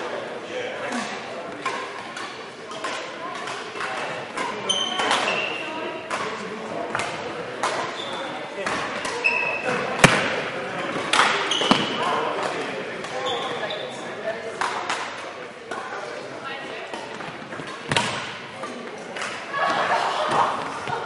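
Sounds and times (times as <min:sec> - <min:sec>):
shoes squeaking on court: 0:04.4 - 0:05.7, 0:07.6 - 0:08.4, 0:09.0 - 0:14.2
racket striking shuttlecock: 0:08.6 - 0:10.4.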